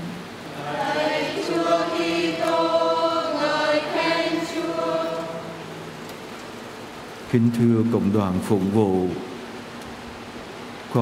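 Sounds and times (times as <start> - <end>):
low hiss of room noise: 0.0 - 11.0
congregation chanting: 0.4 - 5.9.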